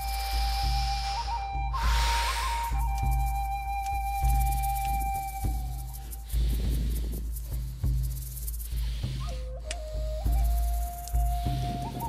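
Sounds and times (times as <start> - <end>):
deep breaths in and out: 0.0 - 2.8, 5.9 - 10.0
flute-like melody: 0.0 - 6.5, 9.2 - 12.0
low drone: 0.0 - 12.0.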